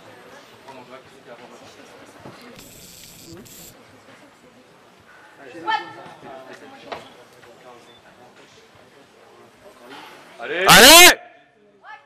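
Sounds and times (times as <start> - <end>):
voices murmuring in hall: 0.0 - 12.0.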